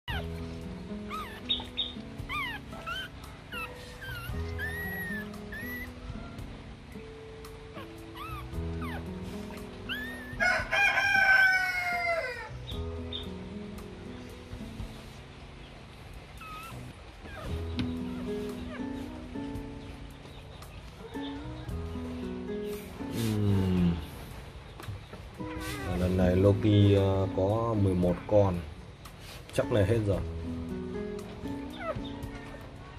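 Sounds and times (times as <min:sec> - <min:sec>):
background music with held chords: 0:00.0 - 0:32.9
puppy crying in high squeaks: 0:00.1 - 0:00.4, 0:01.0 - 0:06.5, 0:07.7 - 0:10.7, 0:16.4 - 0:19.1, 0:25.4 - 0:26.5, 0:31.6 - 0:32.8.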